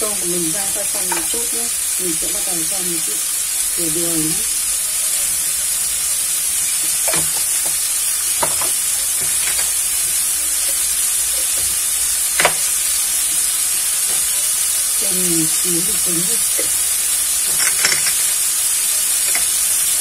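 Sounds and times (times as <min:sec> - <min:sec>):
food sizzling in a pan: 0:00.0 - 0:20.0
sharp popping of frying: 0:00.0 - 0:20.0.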